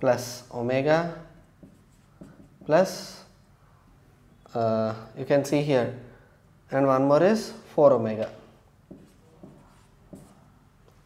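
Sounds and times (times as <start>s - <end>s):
marker writing on whiteboard: 1.0s - 3.4s, 8.2s - 11.0s.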